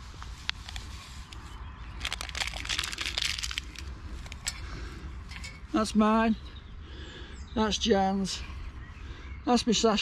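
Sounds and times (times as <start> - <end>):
packet crinkling: 0.5 - 4.6
powder pouring into cup: 2.0 - 3.9.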